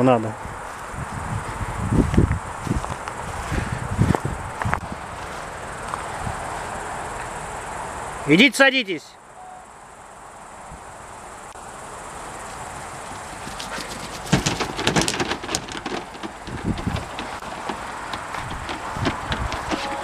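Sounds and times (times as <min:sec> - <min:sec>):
rustling noise: 0:00.7 - 0:05.5, 0:12.5 - 0:20.0
dog claws clattering on truck bed: 0:13.6 - 0:20.0.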